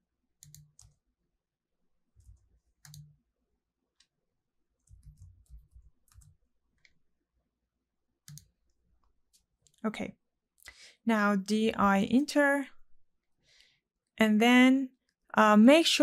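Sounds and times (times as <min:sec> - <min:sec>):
computer mouse clicks: 0:00.4 - 0:01.0, 0:02.2 - 0:03.2, 0:04.8 - 0:07.0, 0:08.2 - 0:08.6.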